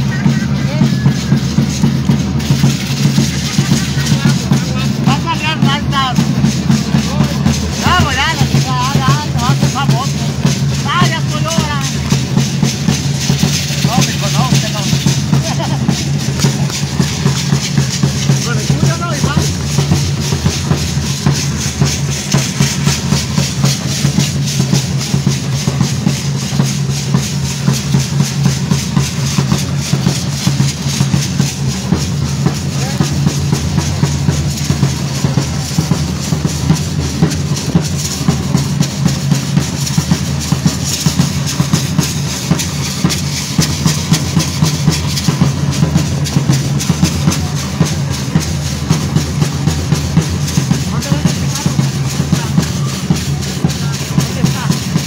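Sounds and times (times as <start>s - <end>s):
continuous high hiss: 0.0s - 55.0s
drums beating a steady rhythm: 0.0s - 55.0s.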